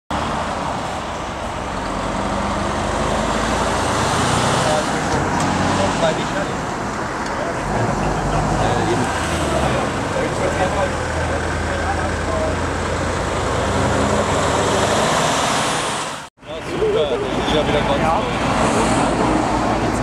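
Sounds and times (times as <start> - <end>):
road traffic: 0.1 - 20.0
indistinct voices: 2.9 - 15.2
heavy diesel engines idling: 4.6 - 13.6.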